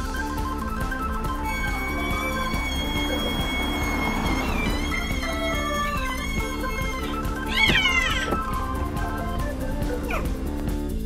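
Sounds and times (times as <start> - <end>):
background music: 0.0 - 11.0
cat meowing: 5.7 - 8.4.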